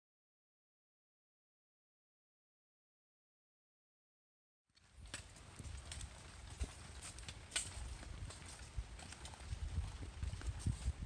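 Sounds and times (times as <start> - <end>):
wind rumble on microphone: 4.8 - 11.0.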